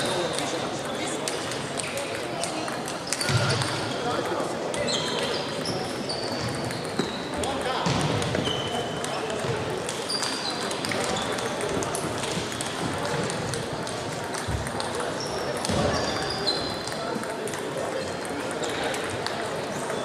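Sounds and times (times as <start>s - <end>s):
murmur of voices: 0.0s - 20.0s
table tennis balls clicking: 0.0s - 20.0s
short high squeaks: 4.8s - 7.2s.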